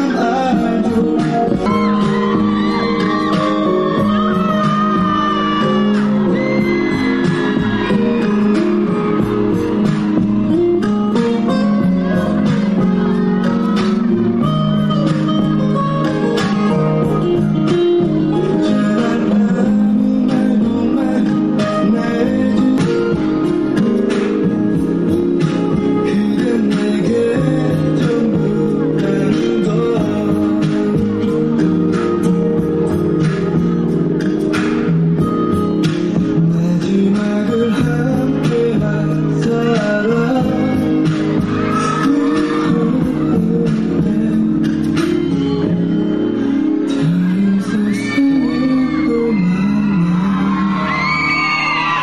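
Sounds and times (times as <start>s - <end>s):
guitar: 0.0s - 52.0s
live band playing pop ballad: 0.0s - 52.0s.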